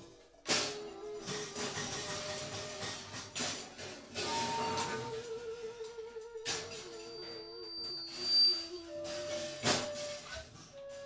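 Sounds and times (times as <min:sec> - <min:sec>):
flutes holding low notes: 0:04.1 - 0:11.0
high whistle-like tone: 0:04.2 - 0:11.0.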